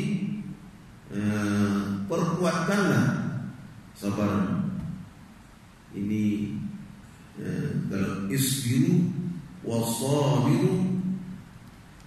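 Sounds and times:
man chanting melodic recitation: 0.0 - 5.0, 5.9 - 11.2.

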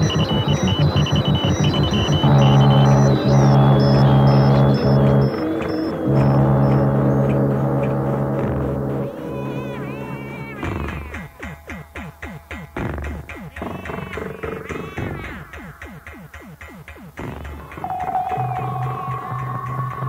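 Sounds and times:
short high beeps: 0.0 - 7.3, 17.6 - 20.0
sustained low drone: 0.0 - 11.2, 17.6 - 20.0
pulsing low electronic tone: 0.0 - 20.0.

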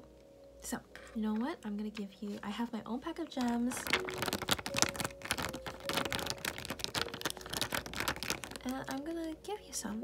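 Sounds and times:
plastic sheet clicking and crinkling: 3.1 - 9.4.

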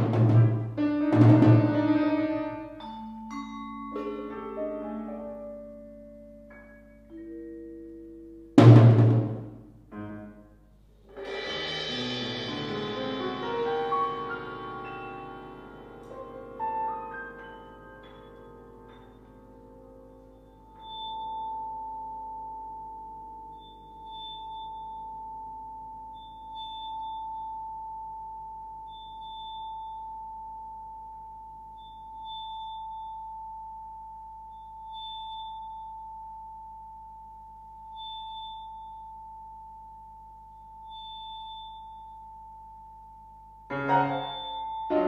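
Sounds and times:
lower ringing tones: 2.0 - 8.6, 13.8 - 45.0.

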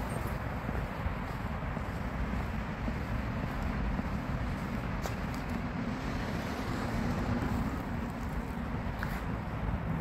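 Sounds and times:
distant road traffic rumble: 0.0 - 10.0.

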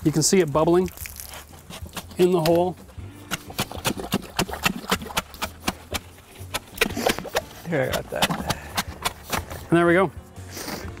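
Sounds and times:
wet cement fizzing and popping: 0.0 - 2.7, 3.3 - 9.4.

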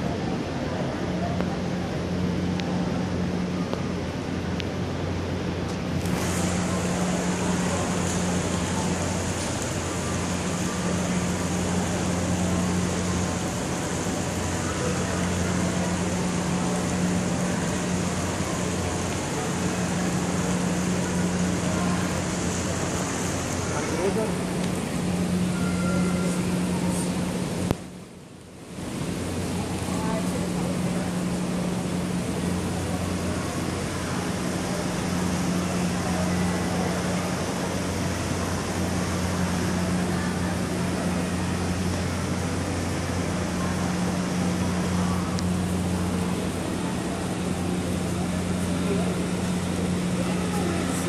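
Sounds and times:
low constant hum: 0.0 - 51.0
steady hiss: 0.1 - 51.0.

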